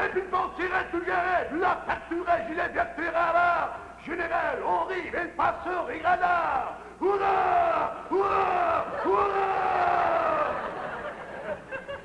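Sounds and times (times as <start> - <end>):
man shouting drawn-out calls: 6.2 - 10.6.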